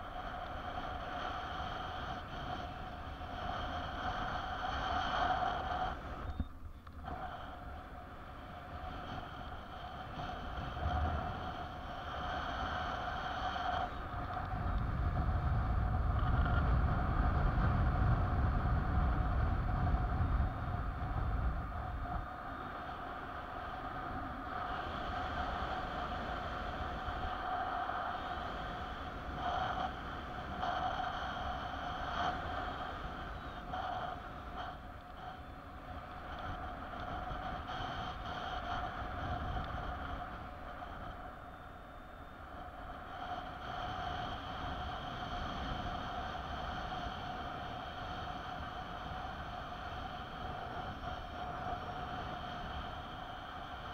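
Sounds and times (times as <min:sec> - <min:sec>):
wind rushing over microphone: 0:00.0 - 0:53.9.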